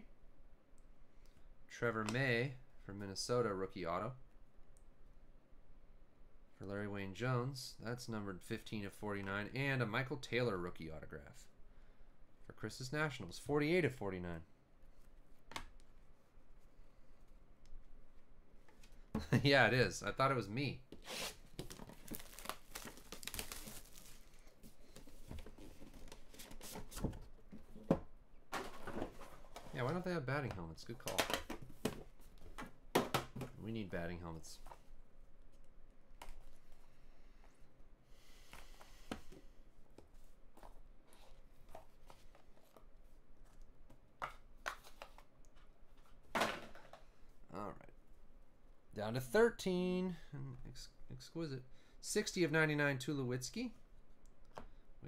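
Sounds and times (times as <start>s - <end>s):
plastic shrink-wrap crinkling: 21.5s - 24.5s
cards clicking and rustling: 21.6s - 24.2s, 44.2s - 46.1s
card stock rustle: 21.6s - 27.0s.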